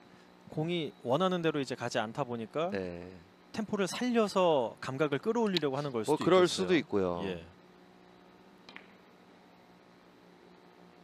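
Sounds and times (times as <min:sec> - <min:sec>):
billiard ball click: 0:08.6 - 0:09.0.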